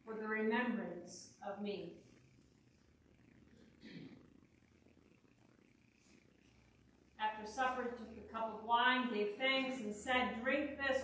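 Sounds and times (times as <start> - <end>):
faint low steady hum: 0.0 - 11.0.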